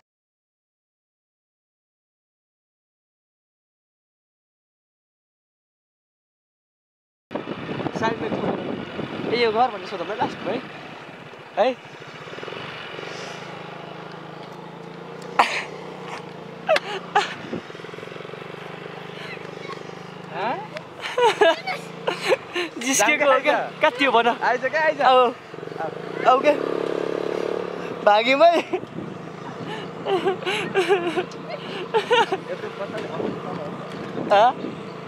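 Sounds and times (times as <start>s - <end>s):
motorcycle engine running: 7.3s - 35.0s.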